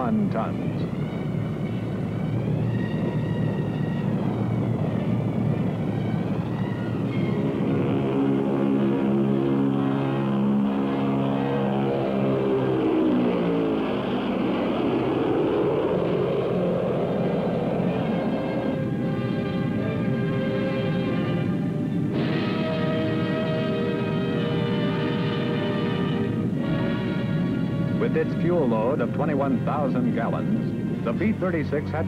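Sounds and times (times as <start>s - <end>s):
bomber aircraft engines droning: 0.0s - 32.0s.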